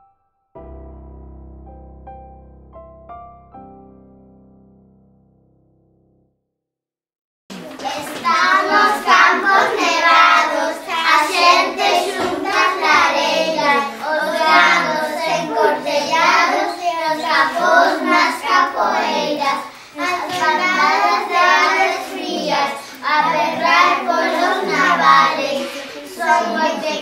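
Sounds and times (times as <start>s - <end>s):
children singing in unison: 7.6s - 27.0s.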